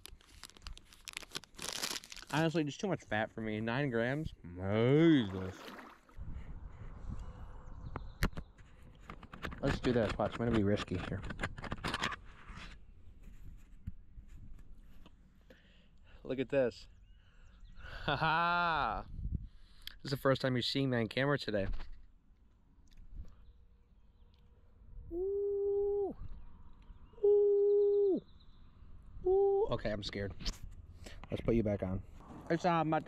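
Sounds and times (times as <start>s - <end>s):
man hooting like an owl: 25.0s - 26.3s, 27.2s - 28.3s, 29.2s - 29.8s.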